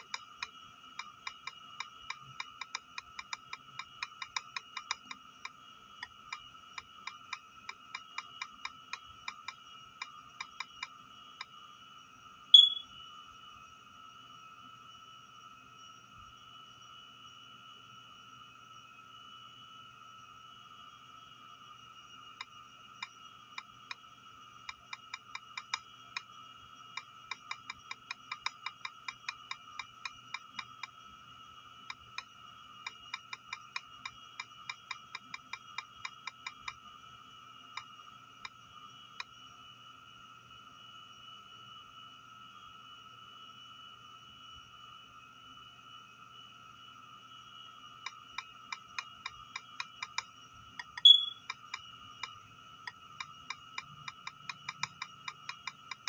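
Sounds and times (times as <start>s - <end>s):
faint high-pitched whine: 0.0s - 56.0s
taps on tablet keyboard: 1.0s - 5.6s, 12.6s - 12.8s, 48.1s - 52.4s, 53.2s - 56.0s
blip: 12.6s - 12.9s, 50.8s - 51.5s.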